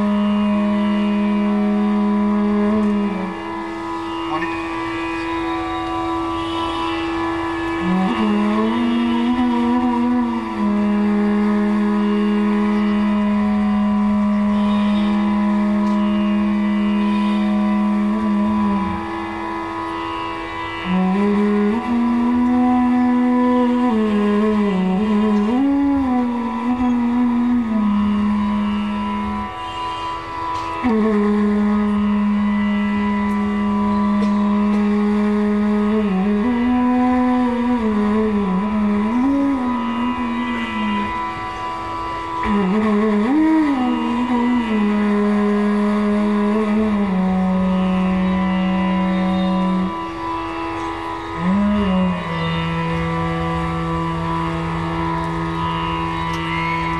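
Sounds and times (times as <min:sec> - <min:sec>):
bamboo flute playing slow phrases: 0:00.0 - 0:56.9
steady drone: 0:00.0 - 0:56.9.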